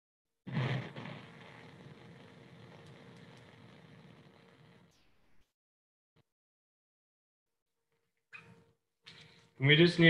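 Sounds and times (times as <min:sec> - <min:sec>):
gas burner flame hissing: 0:00.5 - 0:05.0.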